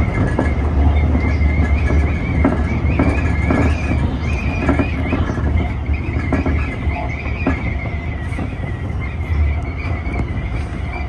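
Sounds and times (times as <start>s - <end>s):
low train running rumble: 0.0s - 11.0s
train wheel squeal: 0.0s - 11.0s
wheels clacking over rail joints: 0.0s - 11.0s.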